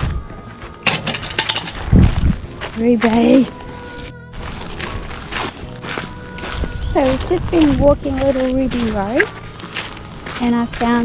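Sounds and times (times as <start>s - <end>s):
faint background music: 0.0s - 11.0s
footsteps crunching on gravel: 0.0s - 11.0s.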